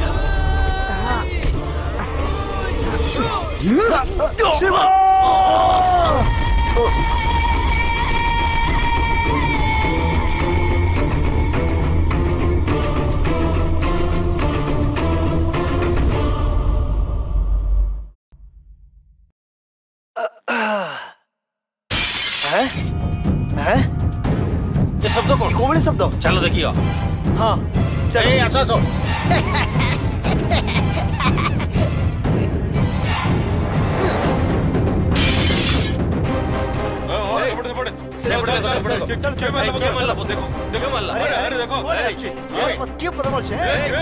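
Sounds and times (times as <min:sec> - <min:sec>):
men shouting: 0:02.8 - 0:06.3
film music with dense beat: 0:22.9 - 0:44.0.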